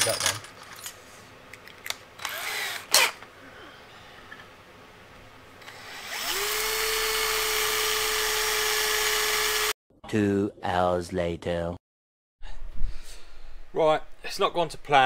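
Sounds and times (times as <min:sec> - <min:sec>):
cordless drill drilling into steel: 0:02.2 - 0:03.2, 0:05.6 - 0:09.7.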